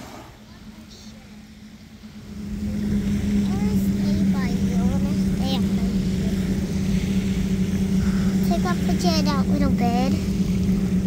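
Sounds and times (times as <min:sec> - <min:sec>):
motorboat engine running: 0:00.0 - 0:11.0.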